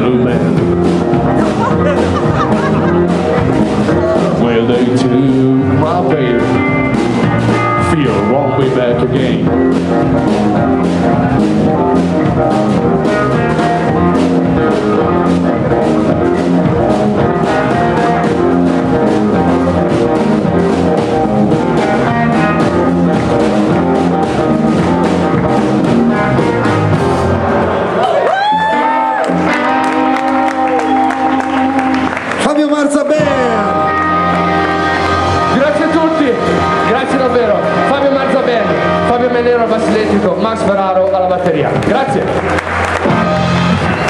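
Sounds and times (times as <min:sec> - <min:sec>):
drum strokes: 0:00.0 - 0:27.8
blues band playing: 0:00.0 - 0:44.0
electric guitar: 0:00.0 - 0:44.0.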